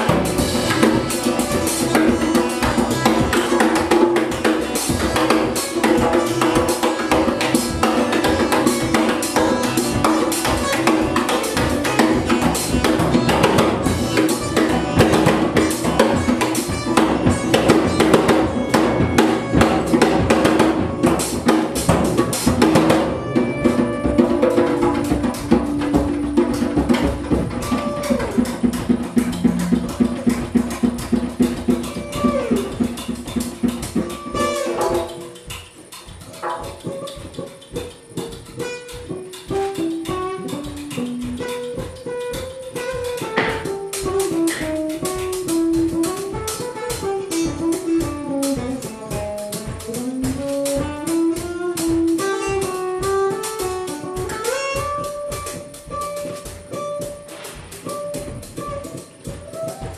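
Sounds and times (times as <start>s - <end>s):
drums and percussion: 0.0s - 59.9s
live band music: 0.0s - 59.9s
plucked strings: 0.0s - 59.9s.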